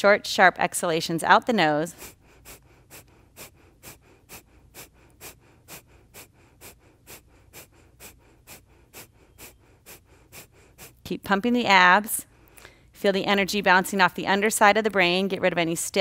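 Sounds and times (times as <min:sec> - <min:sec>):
woman's sharp nasal exhalations: 0:01.9 - 0:11.1, 0:12.3 - 0:12.9.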